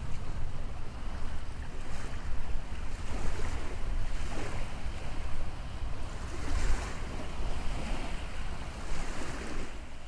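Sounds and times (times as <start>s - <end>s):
sea waves rushing: 0.0s - 10.0s
wind buffeting microphone: 0.0s - 10.0s.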